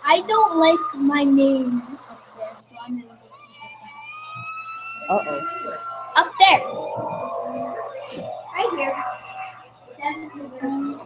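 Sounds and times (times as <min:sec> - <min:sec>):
siren wailing: 0:00.0 - 0:11.0.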